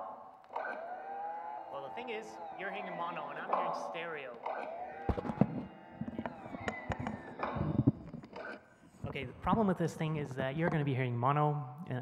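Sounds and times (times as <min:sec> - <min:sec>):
sharp knocks: 0:03.4 - 0:08.6.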